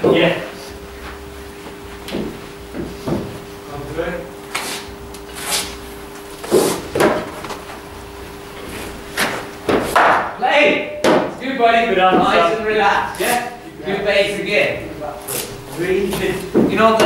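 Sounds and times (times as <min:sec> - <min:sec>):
ball hitting matting and netting: 0:06.4 - 0:07.7, 0:09.2 - 0:11.4
bat striking cricket ball: 0:09.7 - 0:10.3.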